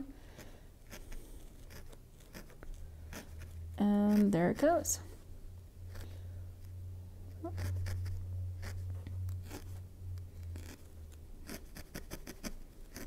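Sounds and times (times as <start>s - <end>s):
steady low hum: 0.0s - 13.0s
felting needle poking foam pad: 0.8s - 4.8s, 7.4s - 13.0s.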